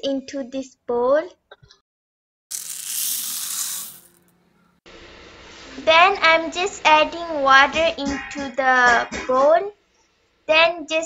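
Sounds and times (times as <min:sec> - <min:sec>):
dry beans pouring into bowl: 0:02.5 - 0:04.2.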